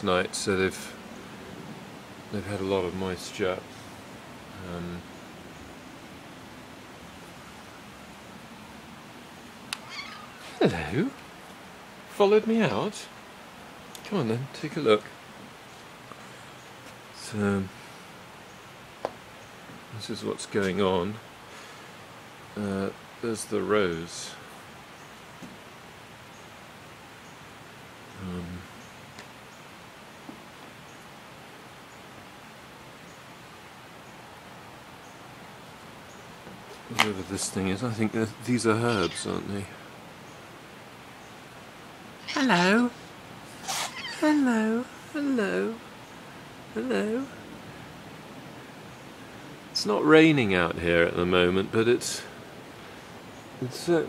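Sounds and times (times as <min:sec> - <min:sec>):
outdoor background hiss: 0:00.0 - 0:54.0.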